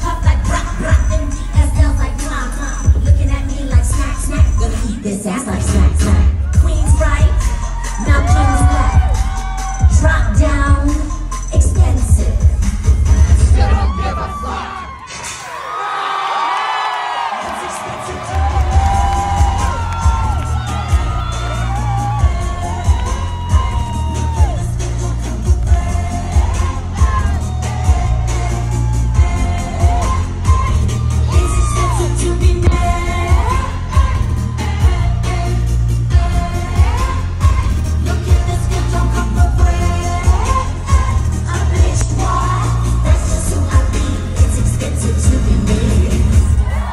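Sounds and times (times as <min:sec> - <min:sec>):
heavy kick-drum beat: 0:00.0 - 0:14.0, 0:17.8 - 0:46.7.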